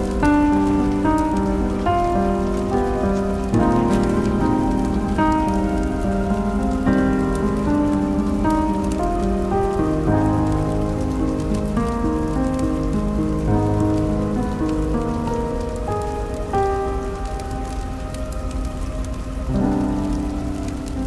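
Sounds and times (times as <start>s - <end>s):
slow piano melody: 0.0s - 21.0s
steady rain falling: 0.0s - 21.0s.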